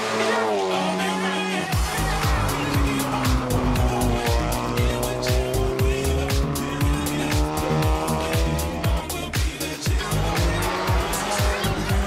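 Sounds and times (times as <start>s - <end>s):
background music with steady beat: 0.0s - 12.0s
race car engine running hard: 0.0s - 12.0s.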